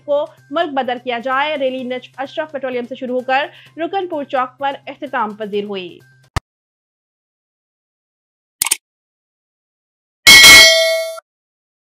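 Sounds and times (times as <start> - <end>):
metallic bell ding: 10.3 - 11.2.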